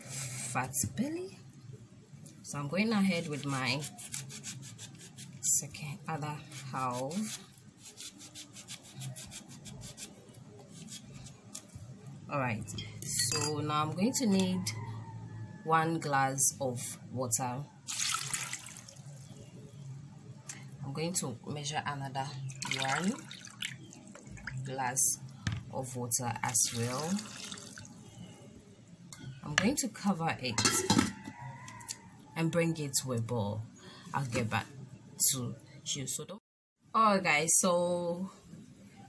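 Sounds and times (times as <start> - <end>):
lemon rind rasping by hand: 3.1 - 5.6, 6.2 - 11.7
water poured into saucepan: 17.9 - 19.0, 22.6 - 23.8, 26.7 - 28.0.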